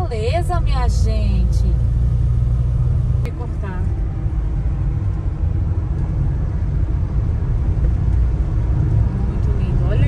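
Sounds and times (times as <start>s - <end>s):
car interior engine rumble: 0.0s - 10.0s.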